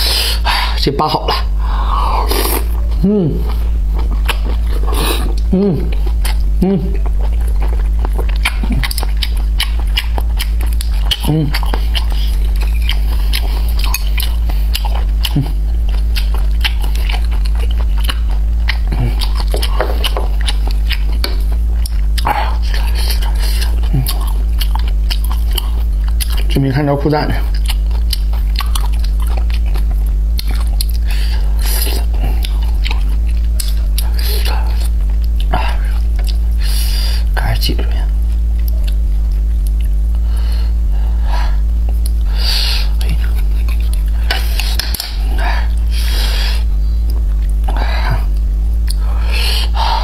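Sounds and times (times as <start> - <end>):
steady low hum: 0.0 - 50.0
person humming: 1.2 - 3.8, 4.7 - 7.2, 11.1 - 12.1, 15.2 - 15.7
chewing with wet mouth clicks: 2.4 - 36.7, 38.1 - 40.2, 41.8 - 42.3, 42.9 - 45.9, 47.0 - 49.1.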